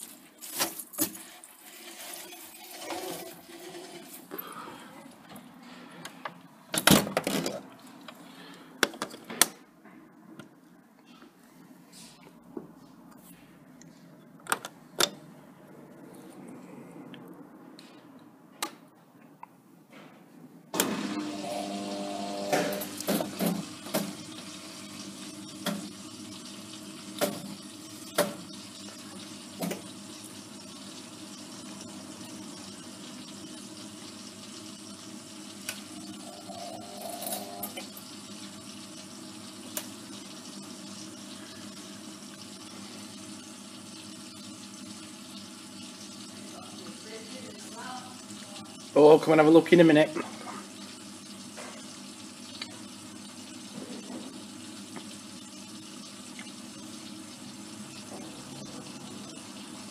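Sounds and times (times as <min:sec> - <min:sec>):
washing machine water rushing: 0:00.0 - 0:06.0, 0:20.8 - 0:59.9.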